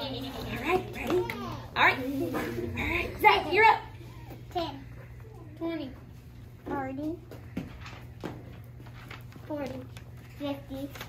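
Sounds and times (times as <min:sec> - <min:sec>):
children speaking quietly: 0:00.0 - 0:11.0
steady low hum: 0:00.0 - 0:11.0.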